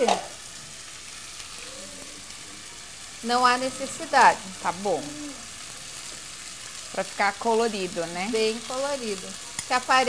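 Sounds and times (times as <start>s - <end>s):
food sizzling in a pot: 0.0s - 10.0s.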